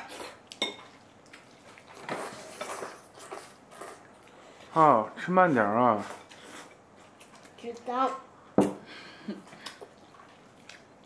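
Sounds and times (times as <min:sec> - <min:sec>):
child slurping noodles: 0:01.9 - 0:04.1.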